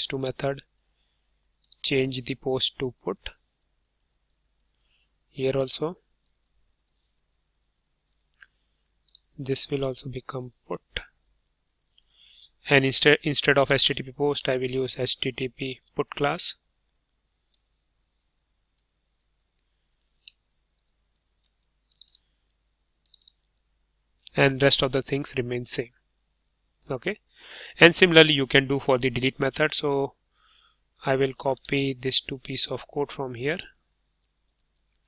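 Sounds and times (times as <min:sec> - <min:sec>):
computer keys typing: 0:21.8 - 0:22.2, 0:23.0 - 0:23.5.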